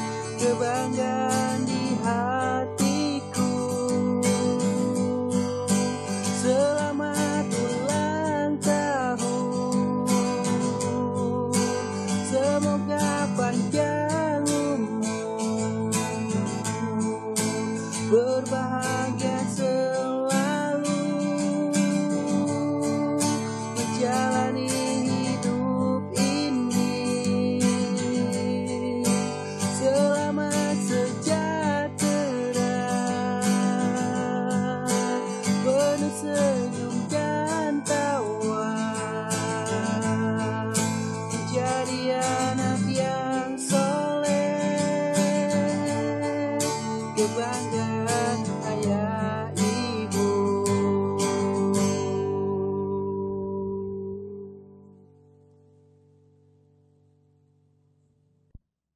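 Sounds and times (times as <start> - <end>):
instrumental melody line: 0.0 - 55.2
acoustic guitar strumming: 0.0 - 58.5.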